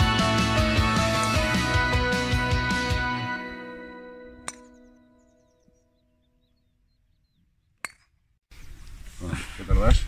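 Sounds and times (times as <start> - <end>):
background music: 0.0 - 5.8
golf club striking ball: 4.4 - 4.9.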